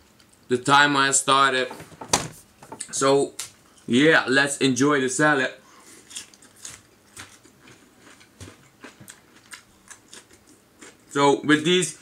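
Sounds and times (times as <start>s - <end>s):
chewing crunchy salad: 5.8s - 11.2s.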